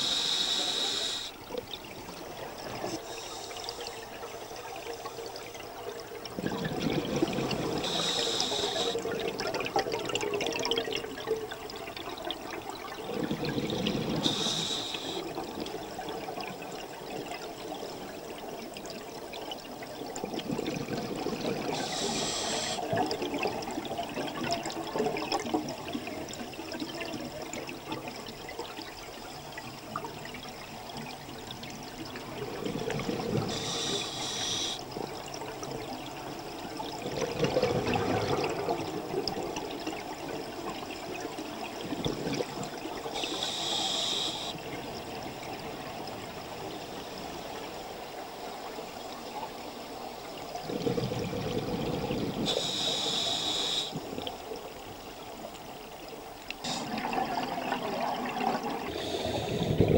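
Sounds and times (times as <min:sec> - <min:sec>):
regulator hissing inhalations: 0:00.0 - 0:01.4, 0:02.9 - 0:04.0, 0:07.8 - 0:09.0, 0:14.2 - 0:15.3, 0:21.8 - 0:22.9, 0:33.5 - 0:34.8, 0:43.2 - 0:44.6, 0:52.5 - 0:54.0, 0:58.8 - 0:59.9
bubbling exhaled air: 0:50.6 - 0:54.3, 0:56.6 - 0:59.9.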